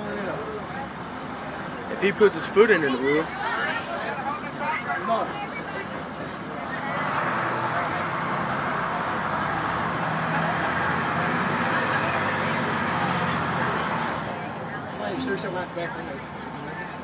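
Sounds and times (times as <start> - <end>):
diesel bus engine under load: 0.0 - 17.0
road noise: 0.0 - 17.0.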